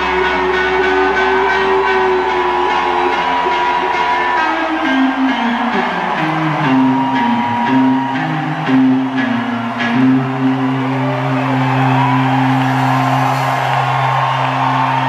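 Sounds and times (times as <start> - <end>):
live band with electric guitar: 0.0 - 15.0.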